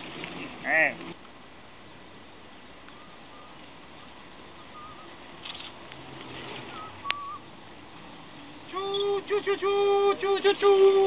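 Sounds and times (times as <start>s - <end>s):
background noise: 0.0s - 11.0s
faint wavering whistle notes: 2.9s - 3.6s, 4.6s - 5.2s, 6.7s - 7.5s.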